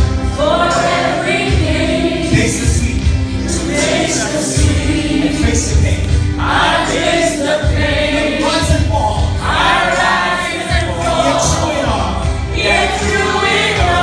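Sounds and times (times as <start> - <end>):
group of people singing: 0.0 - 14.0.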